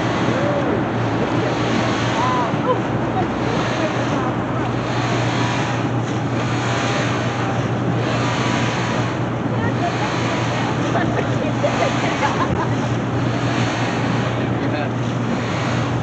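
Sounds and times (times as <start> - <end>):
motorboat engine drone: 0.0 - 16.0
water noise: 0.0 - 16.0
wind rushing on microphone: 0.0 - 16.0.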